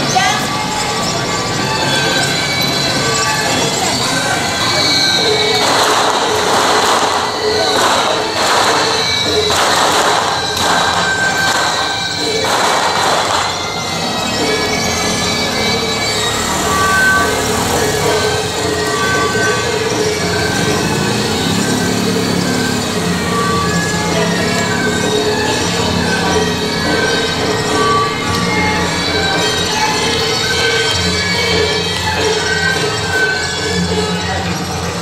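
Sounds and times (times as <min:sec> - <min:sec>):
crowd voices: 0:00.0 - 0:35.0
harsh noisy crashes: 0:04.4 - 0:19.5.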